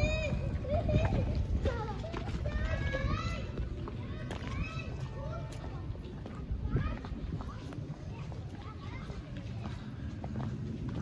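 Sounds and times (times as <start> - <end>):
high-pitched voices chattering: 0.0 - 11.0
steady low rumble: 0.0 - 11.0.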